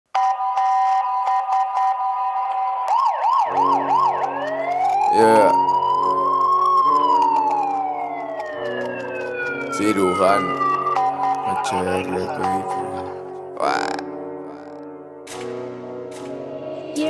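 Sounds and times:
police siren: 0.2s - 13.4s.

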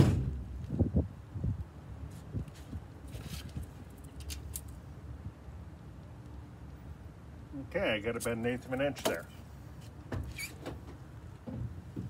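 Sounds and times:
low rumble of handling noise: 0.0s - 12.0s.

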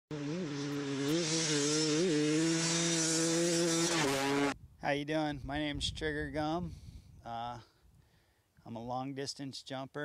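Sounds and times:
dirt bike engine running: 0.1s - 4.6s.

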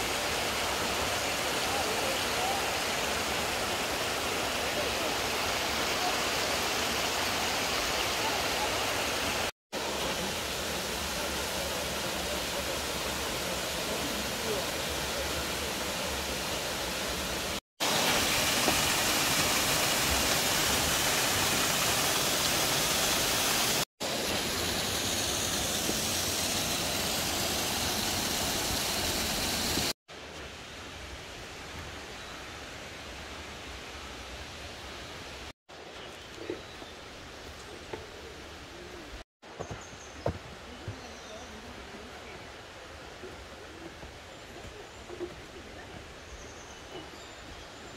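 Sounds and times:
waterfall and stream rushing: 0.0s - 47.9s.

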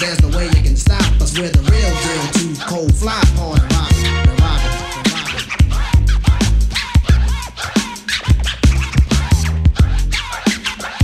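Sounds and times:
bass: 0.0s - 11.0s
drum beat: 0.0s - 11.0s
turntable scratching: 0.0s - 11.0s.

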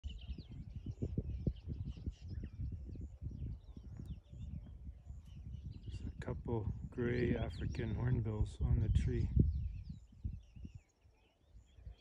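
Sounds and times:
birds chirping: 0.0s - 12.0s
wind rumble on microphone: 0.0s - 12.0s.

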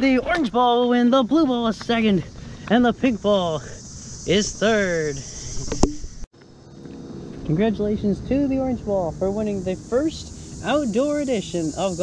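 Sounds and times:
insects chirping: 0.0s - 12.0s.

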